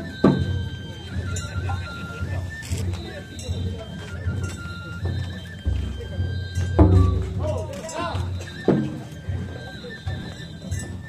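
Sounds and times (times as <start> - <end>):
high flute holding long notes: 0.0 - 11.0
light clopping drum rhythm: 0.0 - 11.0.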